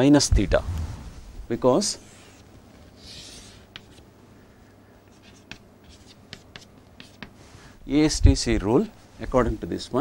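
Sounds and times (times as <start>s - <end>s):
chalk tapping on chalkboard: 3.0s - 4.0s, 5.1s - 7.4s.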